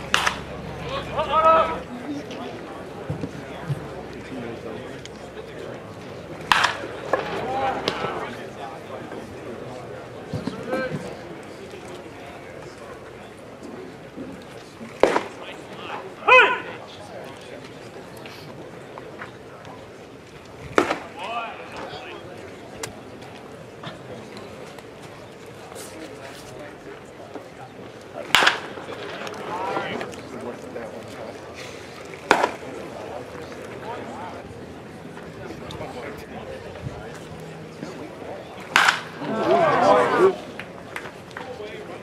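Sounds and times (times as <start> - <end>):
low voice chatter: 0.0 - 42.0
baseball smacking into catcher's mitt: 0.1 - 0.4, 6.5 - 8.0, 38.7 - 39.1.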